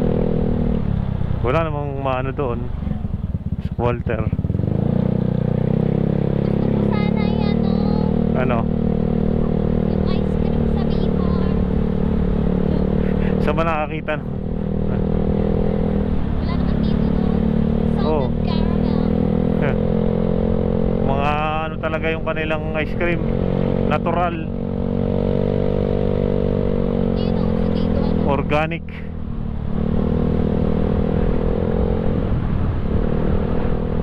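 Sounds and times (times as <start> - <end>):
scooter engine running: 0.0 - 33.3.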